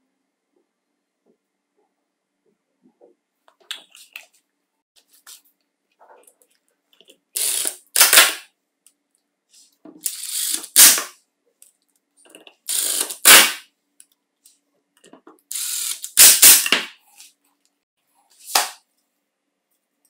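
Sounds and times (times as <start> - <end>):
electric screwdriver driving screws: 7.4 - 8.4, 10.0 - 11.0, 12.7 - 13.5, 15.5 - 16.7
sharp ratcheting burst: 7.4 - 8.5, 10.0 - 11.1, 12.7 - 13.6, 15.5 - 16.7.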